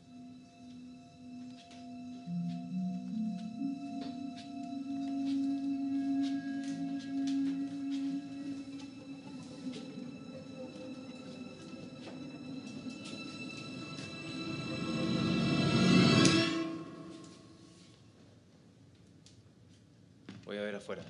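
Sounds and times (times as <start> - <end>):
eerie suspense music: 0.0 - 17.9.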